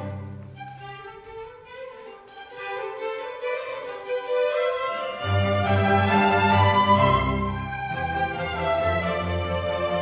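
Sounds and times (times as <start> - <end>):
low cello and bass notes: 0.0 - 2.9, 5.0 - 10.0.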